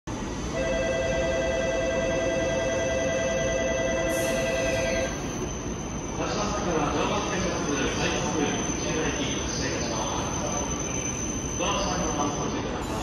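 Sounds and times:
low rumble of station noise: 0.1 - 13.0
two-tone electronic departure bell: 0.6 - 5.3.

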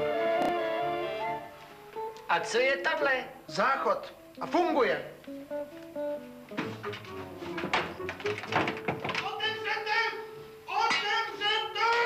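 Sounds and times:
soft music: 0.0 - 12.0.

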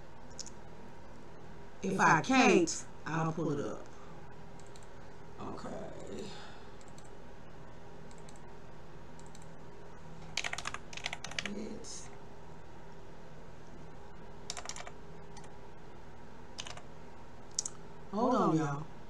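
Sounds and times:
low steady hum: 0.0 - 19.0
keyboard typing: 4.6 - 4.9, 6.8 - 7.1, 8.1 - 8.4, 9.2 - 9.6, 10.2 - 11.7, 14.5 - 15.5, 16.6 - 16.9.

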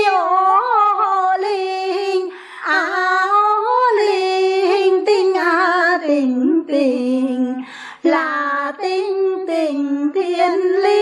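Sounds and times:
two women singing unaccompanied: 0.0 - 11.0.

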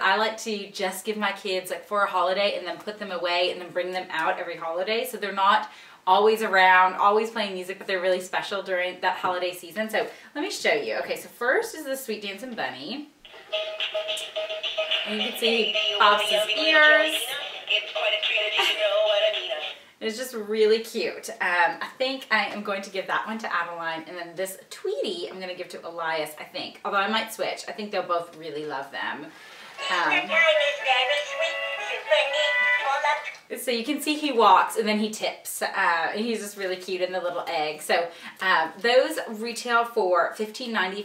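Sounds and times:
toy electronic tune: 13.3 - 19.7
high-pitched recorded voice singing: 13.3 - 19.8, 29.8 - 33.5.

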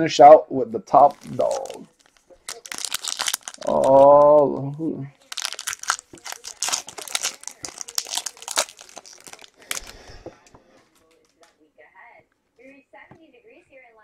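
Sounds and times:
foil wrapper crinkling and tearing: 1.0 - 10.2.

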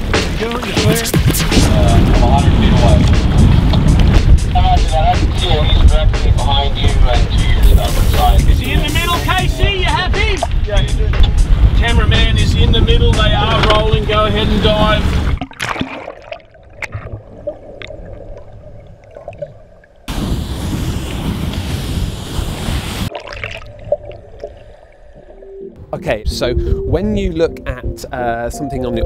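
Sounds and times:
wind and boat rumble: 0.0 - 15.6, 16.6 - 29.0
people's voices: 4.4 - 15.0
underwater clicks and crackles: 13.6 - 14.0, 15.2 - 20.1, 23.1 - 24.8.

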